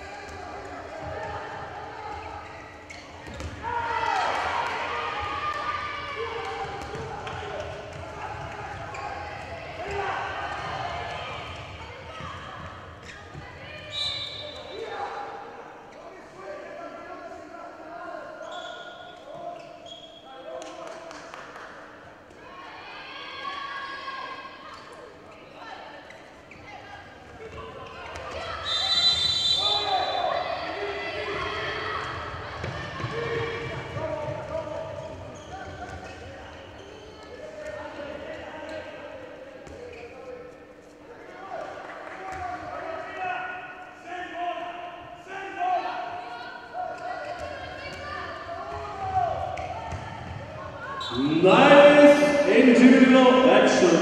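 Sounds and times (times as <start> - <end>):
crowd noise: 0.0 - 20.5, 21.7 - 54.0
handball bouncing on court: 3.2 - 3.6, 6.4 - 13.9, 48.7 - 50.8
players and spectators shouting: 3.5 - 12.4, 28.0 - 35.0, 42.5 - 54.0.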